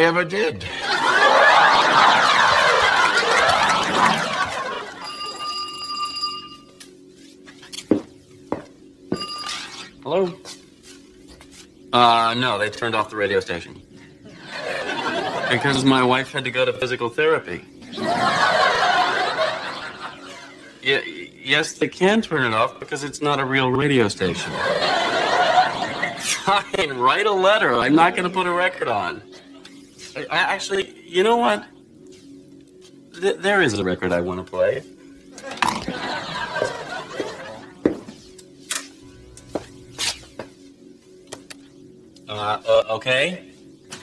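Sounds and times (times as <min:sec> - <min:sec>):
studio audience laughing: 0:00.7 - 0:05.4, 0:14.3 - 0:15.8, 0:17.8 - 0:20.7, 0:24.4 - 0:26.5, 0:35.4 - 0:37.8
vinyl records rustling shuffle: 0:06.8 - 0:08.8, 0:09.5 - 0:11.9, 0:29.6 - 0:30.3, 0:35.4 - 0:42.2.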